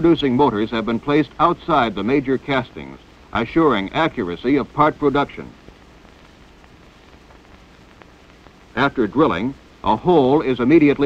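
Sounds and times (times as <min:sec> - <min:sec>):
film soundtrack hiss and crackle: 0:00.0 - 0:11.0.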